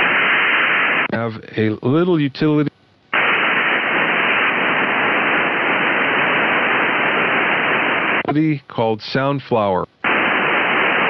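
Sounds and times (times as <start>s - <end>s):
radio receiver static hiss: 0.0s - 11.0s
voice: 1.1s - 2.7s, 8.2s - 9.9s.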